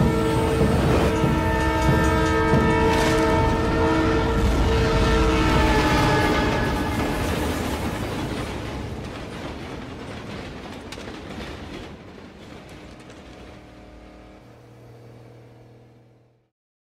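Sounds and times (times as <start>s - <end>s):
freight train rattling past: 0.0s - 16.2s.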